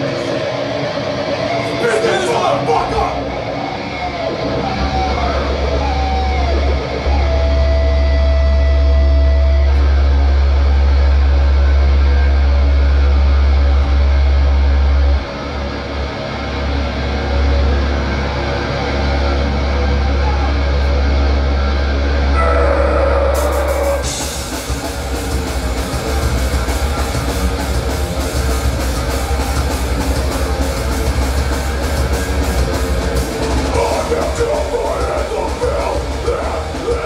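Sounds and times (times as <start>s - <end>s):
amplified bass and guitar drone: 0.0s - 37.0s.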